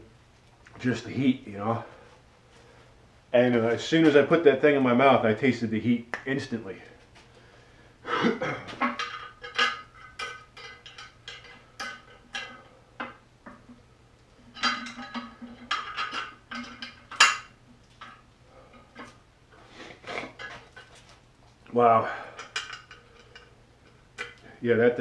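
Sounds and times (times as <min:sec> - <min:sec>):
metal bolts clinking together: 0:08.8 - 0:13.6, 0:14.5 - 0:18.2.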